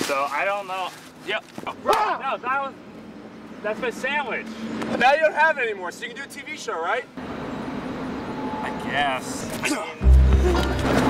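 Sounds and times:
outdoor rumble and hiss: 0:00.0 - 0:10.0.

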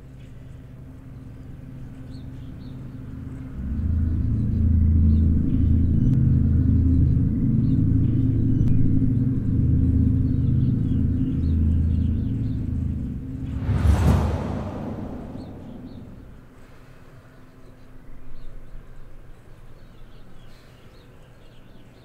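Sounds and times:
low ominous drone: 0:00.0 - 0:17.0.

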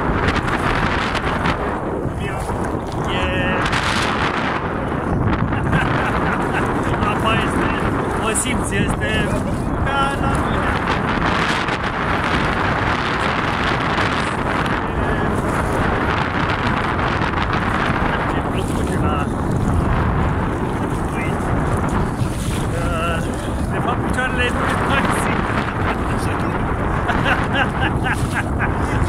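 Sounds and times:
water sloshing from wading: 0:00.0 - 0:29.0
wind buffeting microphone: 0:00.0 - 0:29.0.

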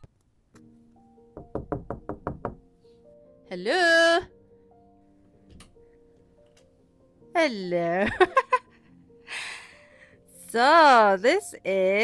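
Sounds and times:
faint background music: 0:00.0 - 0:12.0
knocking on a door: 0:01.4 - 0:02.6.

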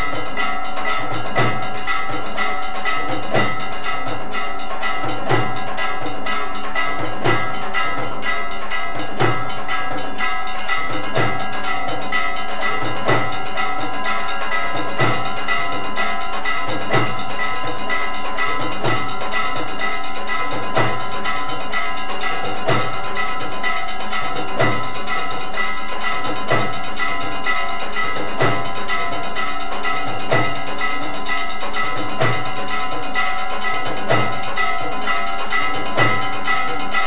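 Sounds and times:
bells ringing: 0:00.0 - 0:37.0
clanging percussion: 0:00.0 - 0:37.0
steady drum beat: 0:00.0 - 0:37.0.

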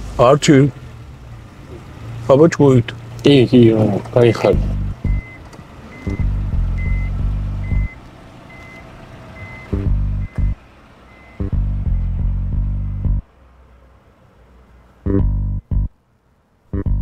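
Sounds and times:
deep bass soundtrack music: 0:04.5 - 0:05.3, 0:06.1 - 0:08.0, 0:09.6 - 0:10.6, 0:11.4 - 0:13.3, 0:15.1 - 0:16.0, 0:16.8 - 0:17.0.

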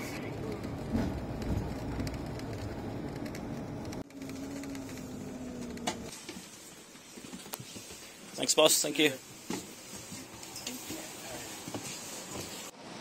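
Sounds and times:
cabin hum: 0:00.0 - 0:06.1
coach engine and road noise: 0:00.0 - 0:13.0.

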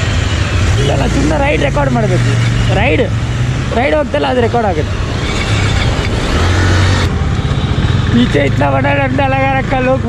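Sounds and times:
motorcycle engines idling: 0:00.0 - 0:10.0
street traffic: 0:00.0 - 0:10.0.

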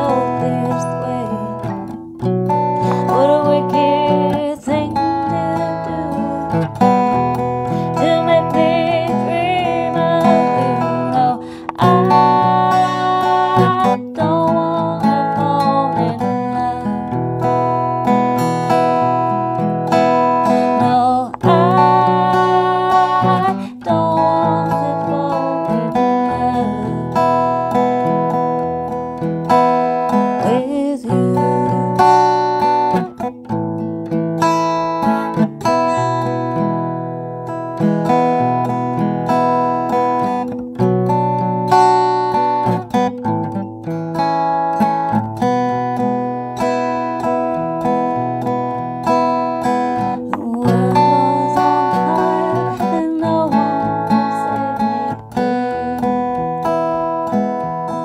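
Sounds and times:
acoustic guitar fingerpicking: 0:00.0 - 0:58.0.

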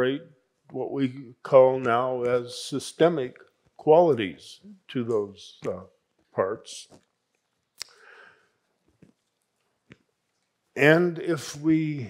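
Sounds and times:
mouth click: 0:07.8 - 0:08.1
soft breath through nose: 0:07.8 - 0:08.6.

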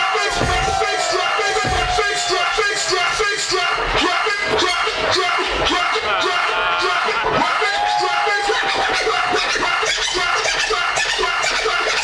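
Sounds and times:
music: 0:00.0 - 0:12.0
vinyl records scratched on turntables: 0:00.0 - 0:12.0.

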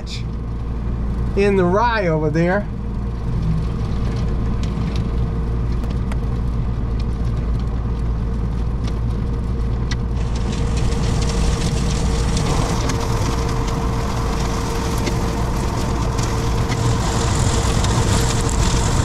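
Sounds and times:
tractor engine running: 0:00.0 - 0:19.0.

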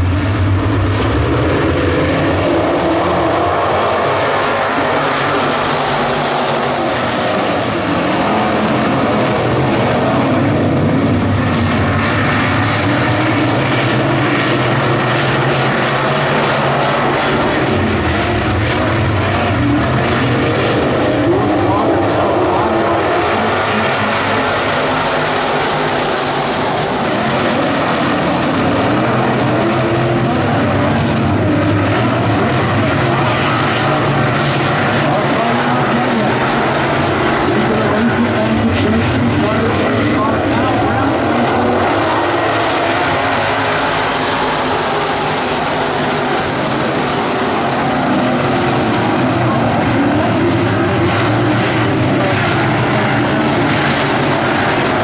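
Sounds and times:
race car engines droning: 0:00.0 - 0:55.0.

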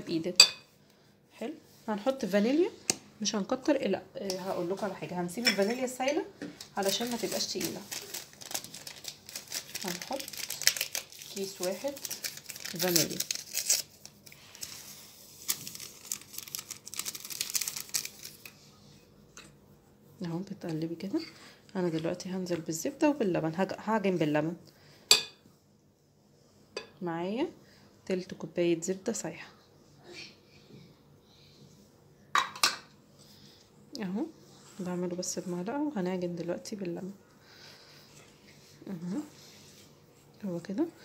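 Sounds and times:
faint handling sounds: 0:04.2 - 0:23.1
paper sachet crinkling: 0:06.8 - 0:18.6.

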